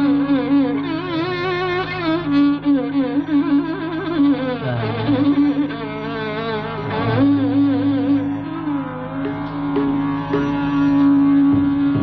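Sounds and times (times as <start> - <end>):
ornamented melody line: 0.0 - 12.0
steady drone: 0.0 - 12.0.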